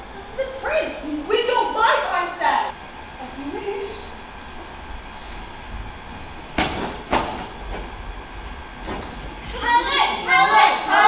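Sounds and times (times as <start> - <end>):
young voices: 0.0 - 4.8, 9.3 - 11.0
sharp knocks: 6.5 - 7.9.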